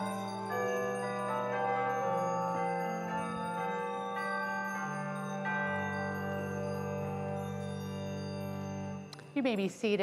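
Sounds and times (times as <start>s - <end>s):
slow chiming instrumental music: 0.0s - 10.0s.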